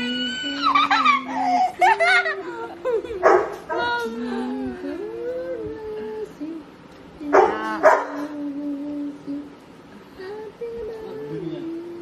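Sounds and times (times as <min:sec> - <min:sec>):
dog barking: 0:03.2 - 0:03.7, 0:07.4 - 0:08.2.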